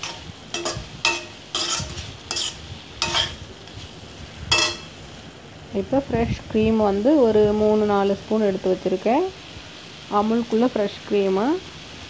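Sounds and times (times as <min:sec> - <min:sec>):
spatula scraping metal pan: 0:00.0 - 0:03.9, 0:04.5 - 0:05.0
low sizzle of frying: 0:00.0 - 0:12.0.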